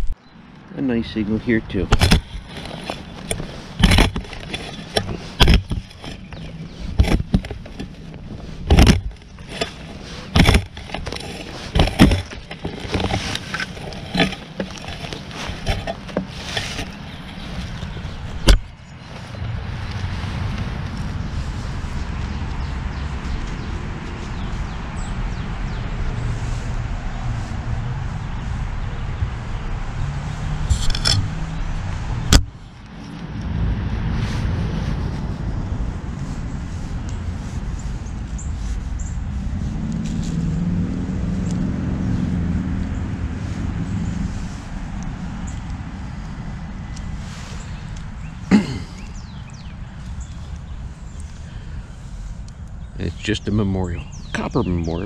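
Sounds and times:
steady low rumble: 0:00.0 - 0:55.0
shovel chopping into soil: 0:01.8 - 0:07.8, 0:08.6 - 0:17.4.

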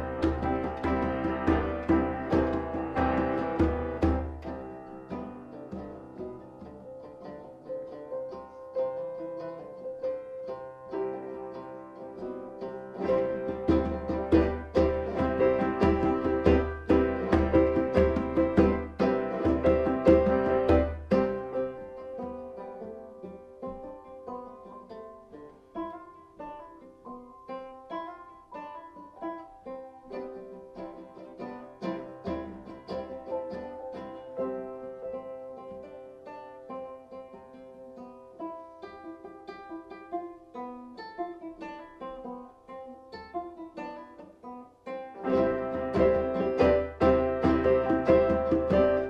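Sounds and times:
banjo picking a melody: 0:00.0 - 0:49.0.

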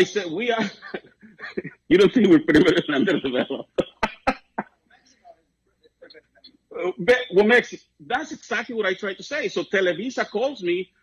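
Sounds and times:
man laughing: 0:00.0 - 0:04.6.

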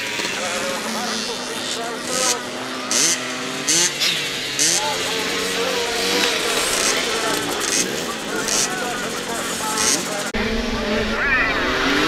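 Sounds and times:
motocross bikes riding past: 0:00.0 - 0:12.0.

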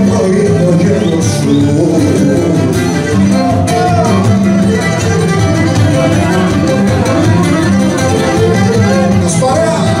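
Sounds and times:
strummed acoustic guitar: 0:00.0 - 0:10.0
bowed string melody: 0:01.8 - 0:10.0.

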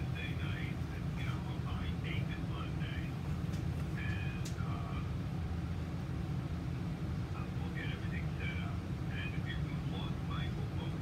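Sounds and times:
man's voice through phone speaker: 0:00.0 - 0:03.2, 0:03.9 - 0:05.1, 0:07.4 - 0:11.0.

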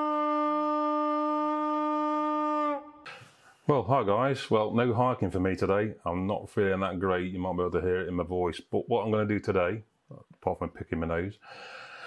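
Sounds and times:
long horn blast: 0:00.0 - 0:03.2.

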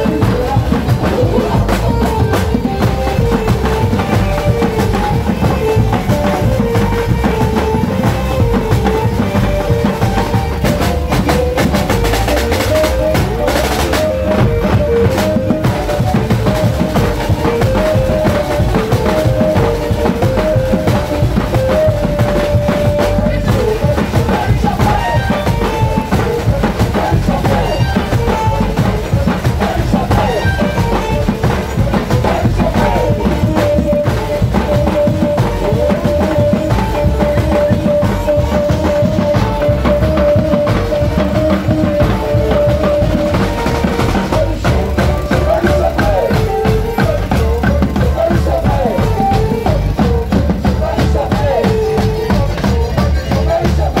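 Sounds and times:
snare drums: 0:00.0 - 0:54.0.

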